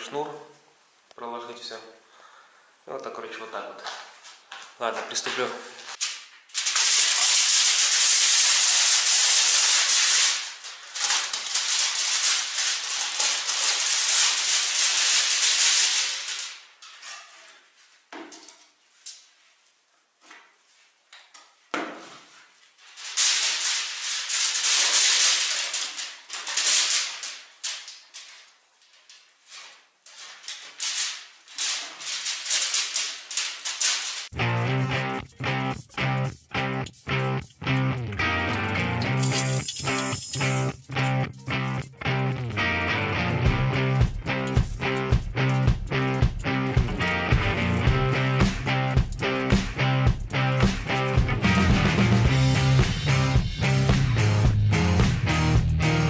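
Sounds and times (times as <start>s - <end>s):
aluminium foil crackling: 5.9s - 17.6s, 22.7s - 52.3s
background music with a beat: 40.3s - 56.0s.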